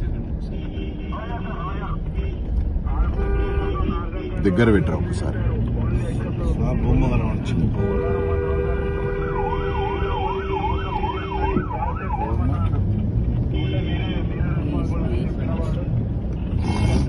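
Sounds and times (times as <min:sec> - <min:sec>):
road traffic and engine rumble: 0:00.0 - 0:17.0
police siren sweeping: 0:09.3 - 0:12.8.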